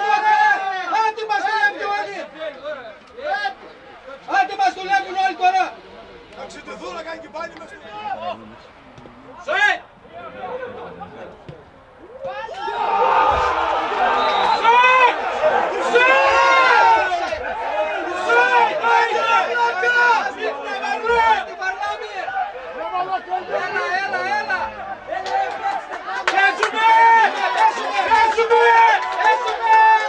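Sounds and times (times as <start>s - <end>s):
crowd shouting and cheering: 0.0s - 30.0s.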